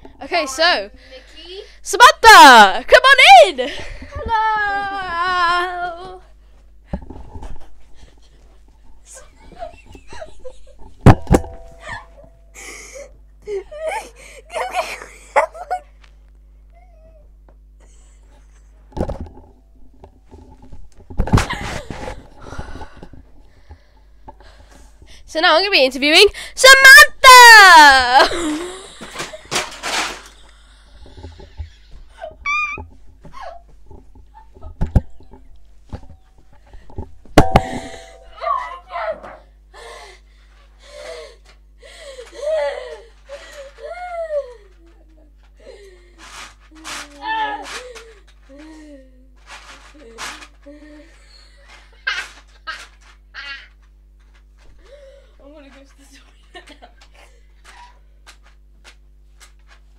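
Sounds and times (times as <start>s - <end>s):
girl laughing: 3.4s - 6.2s, 9.1s - 10.8s, 11.8s - 16.0s, 27.8s - 29.6s, 31.5s - 33.7s, 42.1s - 45.8s, 50.8s - 53.8s.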